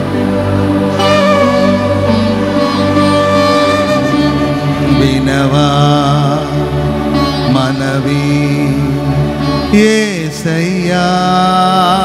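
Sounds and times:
man singing with vibrato: 1.0 - 12.0.

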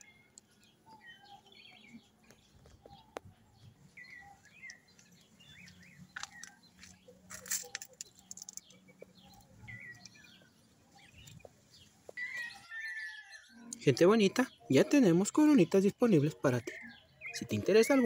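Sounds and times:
birds chirping: 0.0 - 18.0.

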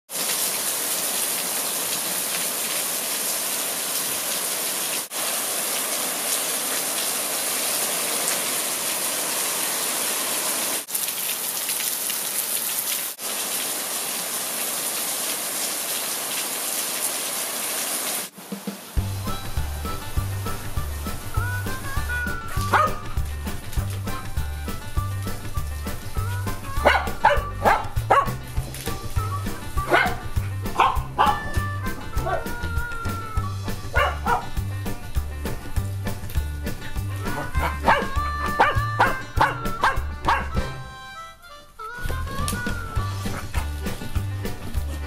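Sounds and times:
heavy rain on leaves and pavement: 0.1 - 27.1, 27.9 - 33.3
music with steady beat: 19.0 - 41.2
dog barking: 22.6 - 23.0, 26.8 - 28.4, 29.9 - 31.6, 32.2 - 32.5, 33.9 - 34.6, 37.3 - 40.6.

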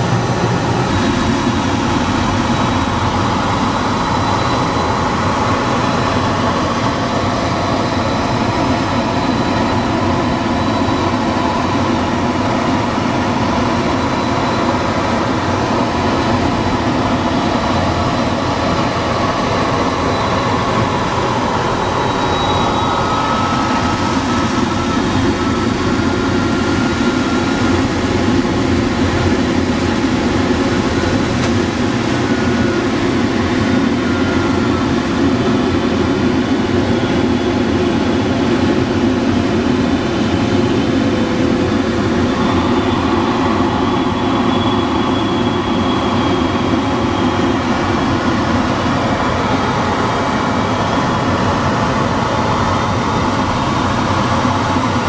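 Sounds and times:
airflow rushing around canopy: 0.0 - 9.2, 10.9 - 55.0.

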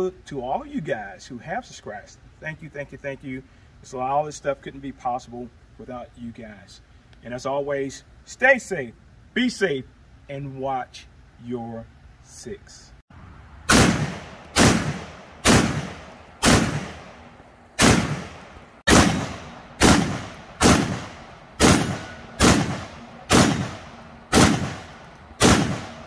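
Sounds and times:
shotgun shots echoing: 13.7 - 26.0.

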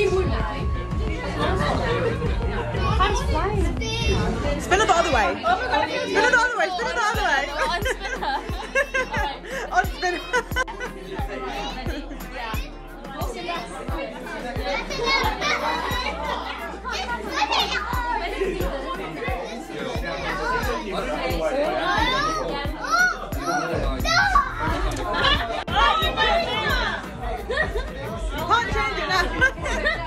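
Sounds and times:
background music with steady beat: 0.0 - 30.0
women and children chattering: 0.0 - 30.0.

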